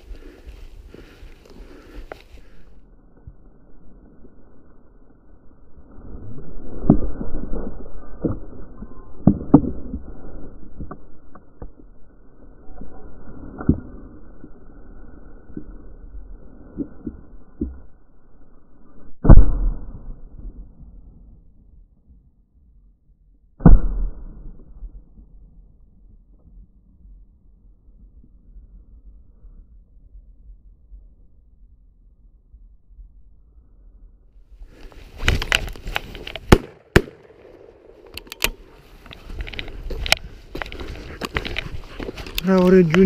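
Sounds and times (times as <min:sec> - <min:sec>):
shotgun shots with echo: 0:36.5 - 0:37.6.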